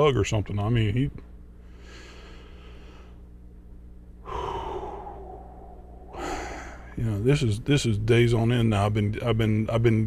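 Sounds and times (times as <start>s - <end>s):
faint steady low hum: 0.0s - 10.0s
man sighing heavily: 4.2s - 7.0s.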